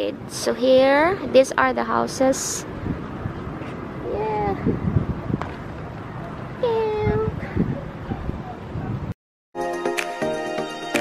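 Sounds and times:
outdoor background noise: 0:00.0 - 0:09.2.

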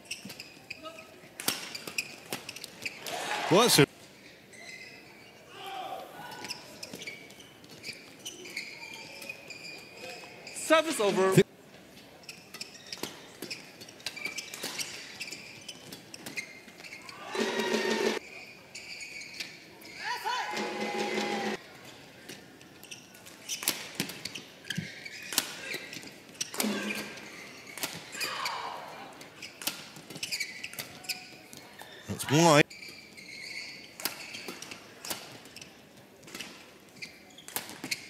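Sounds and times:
players shouting: 0:17.2 - 0:18.2.

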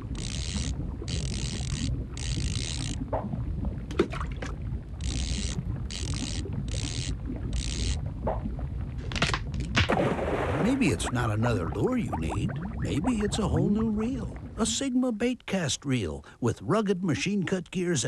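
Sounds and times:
fishing reel gears whirring: 0:00.0 - 0:03.0, 0:05.0 - 0:08.0
low underwater rumble: 0:00.0 - 0:15.0.

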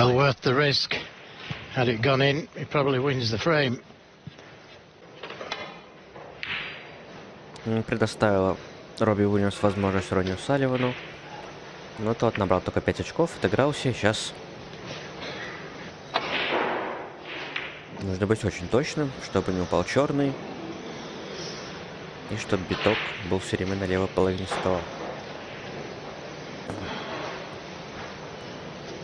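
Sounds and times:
snooker cue striking ball: 0:16.1 - 0:18.0
balls rolling on table: 0:16.1 - 0:18.5, 0:22.4 - 0:23.7.

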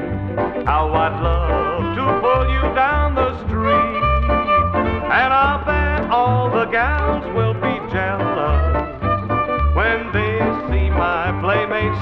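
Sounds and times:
country band playing: 0:00.0 - 0:12.0
steady bass notes: 0:00.0 - 0:12.0
singing: 0:05.1 - 0:09.0, 0:09.7 - 0:12.0.

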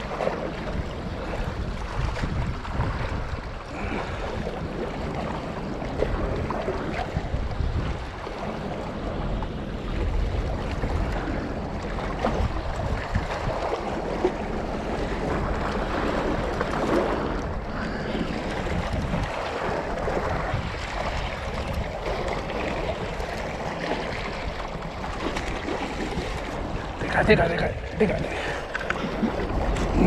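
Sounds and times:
waves washing against rocks: 0:00.0 - 0:30.0
wind on microphone: 0:00.0 - 0:30.0.

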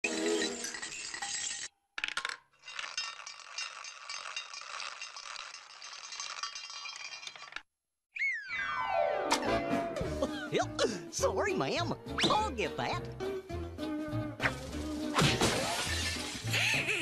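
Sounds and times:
china plates rattling and clinking: 0:02.6 - 0:07.6.

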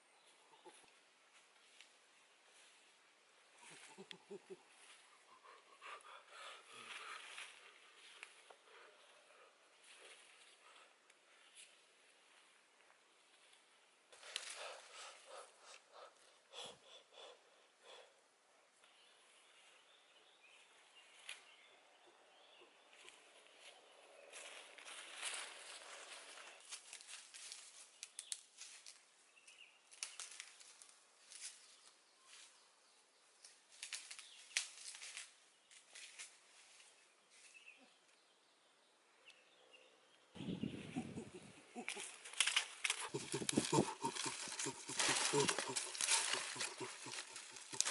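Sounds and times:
footsteps through dry leaves: 0:24.2 - 0:27.9, 0:42.2 - 0:47.9.

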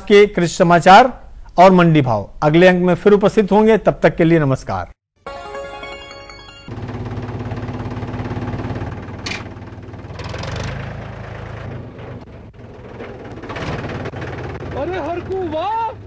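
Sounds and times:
diesel engine idling: 0:06.8 - 0:16.0.

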